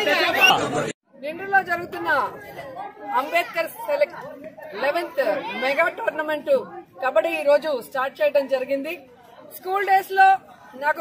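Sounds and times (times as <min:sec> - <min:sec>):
several voices talking over each other: 0:00.0 - 0:11.0.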